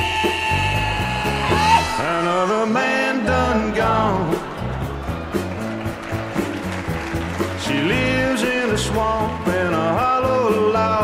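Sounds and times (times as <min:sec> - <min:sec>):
high wailing vocal note: 0:00.0 - 0:04.4
country band playing: 0:00.0 - 0:11.0.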